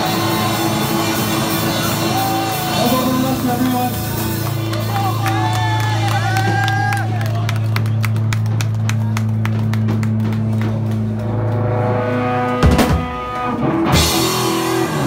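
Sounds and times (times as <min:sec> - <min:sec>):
live rock band playing: 0:00.0 - 0:15.0.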